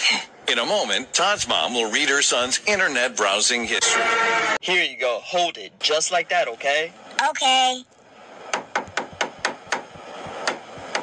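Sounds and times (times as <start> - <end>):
hammer knocking: 8.5 - 11.0.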